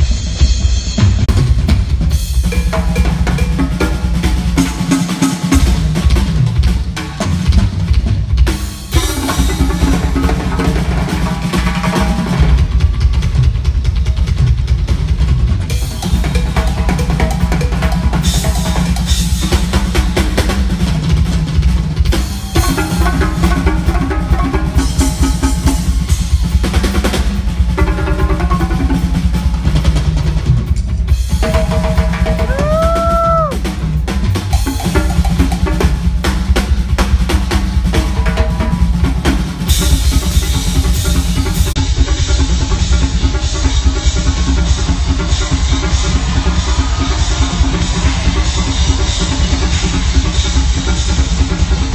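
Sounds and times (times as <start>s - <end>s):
congas and timbales: 0.0s - 51.9s
drum kit playing: 0.0s - 51.9s.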